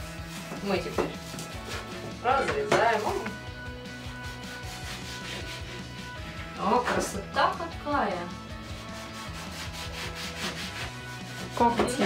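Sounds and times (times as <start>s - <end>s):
knife sawing through bread crust: 8.7s - 11.7s.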